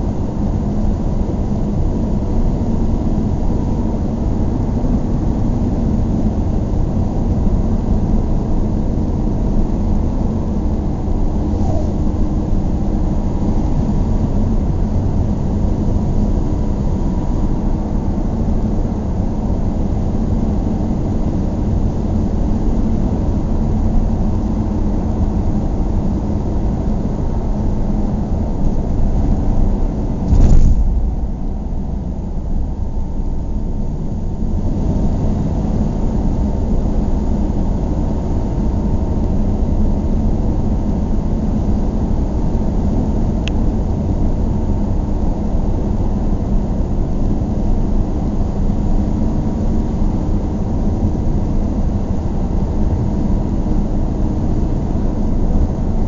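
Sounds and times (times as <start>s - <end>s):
car engine and tyre noise: 0.0s - 56.0s
sharp thump: 30.2s - 31.7s.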